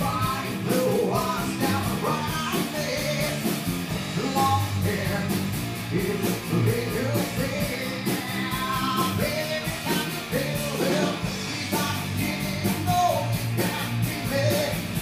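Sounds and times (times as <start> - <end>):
live rock band playing: 0.0 - 15.0
person singing: 0.0 - 15.0.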